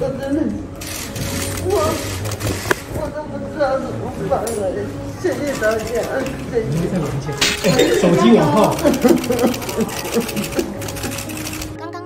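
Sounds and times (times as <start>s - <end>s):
soft background music: 0.0s - 12.0s
camera shutters clicking: 0.8s - 2.9s, 8.6s - 11.8s
woman sobbing cry: 7.6s - 11.3s.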